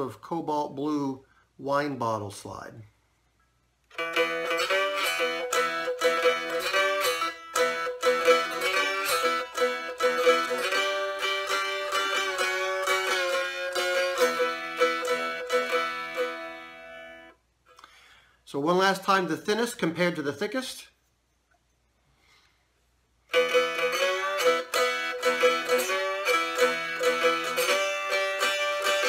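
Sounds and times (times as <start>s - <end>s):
slide guitar playing: 3.9s - 17.4s, 23.3s - 29.0s.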